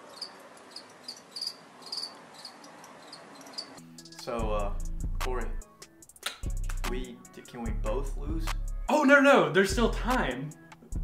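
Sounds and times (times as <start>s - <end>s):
crickets chirping: 0.0s - 4.2s.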